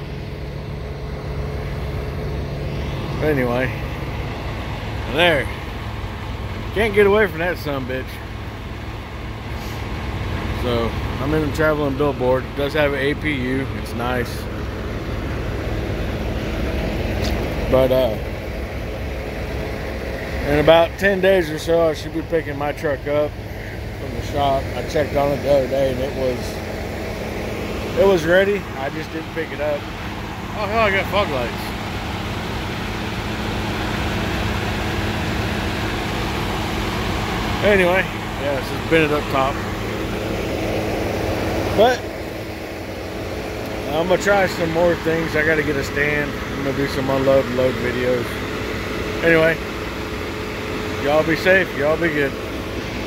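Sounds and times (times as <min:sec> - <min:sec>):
diesel truck engine idling: 0:00.0 - 0:53.0.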